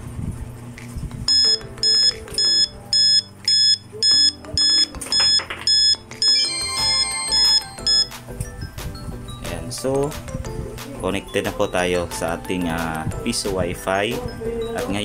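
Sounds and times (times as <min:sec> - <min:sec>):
run of electronic tones: 0:01.3 - 0:08.2
vending machine buzzer beeping: 0:01.3 - 0:08.2.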